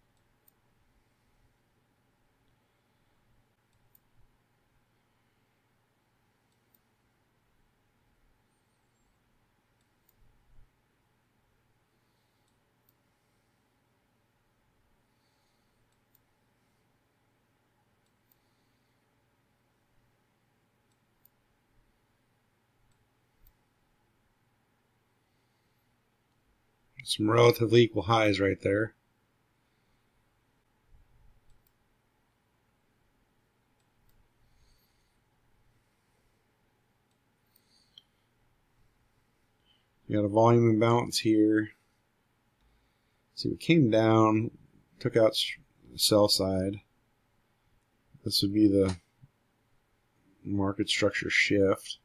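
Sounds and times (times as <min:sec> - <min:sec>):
computer mouse clicks: 0:00.1 - 0:00.6, 0:03.6 - 0:04.2, 0:06.4 - 0:06.9, 0:09.8 - 0:10.3, 0:15.8 - 0:16.3, 0:18.0 - 0:18.5, 0:20.9 - 0:21.4, 0:22.8 - 0:23.6, 0:31.2 - 0:31.8
faint mouse clicks: 0:00.1 - 0:00.7, 0:03.6 - 0:04.3, 0:06.4 - 0:07.0, 0:09.8 - 0:10.7, 0:12.2 - 0:13.1, 0:15.2 - 0:16.8, 0:18.0 - 0:18.7, 0:20.8 - 0:21.4, 0:22.8 - 0:23.7, 0:30.9 - 0:31.8, 0:33.8 - 0:35.2, 0:37.0 - 0:38.3.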